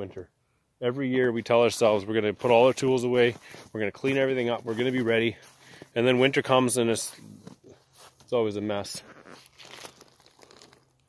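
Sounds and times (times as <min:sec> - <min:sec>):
plastic tarp rustling: 0:08.8 - 0:11.0.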